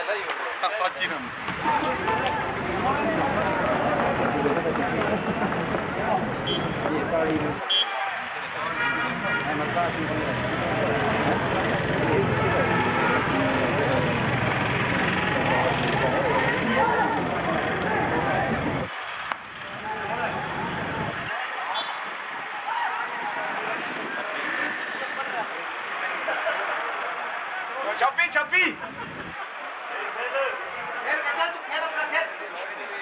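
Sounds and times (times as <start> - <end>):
indistinct chatter: 0.0 - 33.0.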